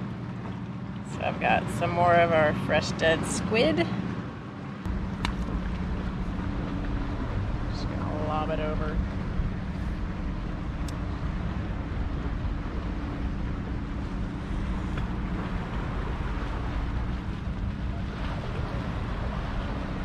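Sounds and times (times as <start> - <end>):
low motor hum: 0.0 - 20.0
wind buffeting microphone: 3.4 - 20.0.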